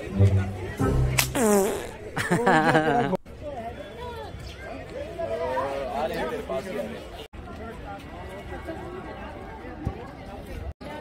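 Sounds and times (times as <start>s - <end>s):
indistinct chatter: 3.2s - 11.0s.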